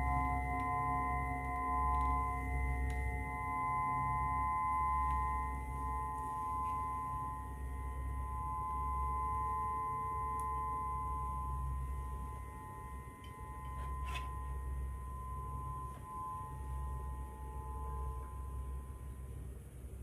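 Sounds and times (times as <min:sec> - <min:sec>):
crystal singing bowls ringing: 0:00.0 - 0:20.0.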